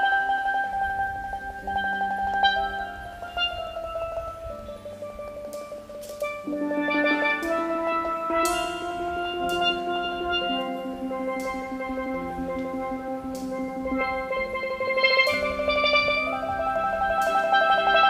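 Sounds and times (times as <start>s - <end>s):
cymbal crashes: 0.0s - 18.0s
steelpan rolled notes: 0.0s - 18.0s.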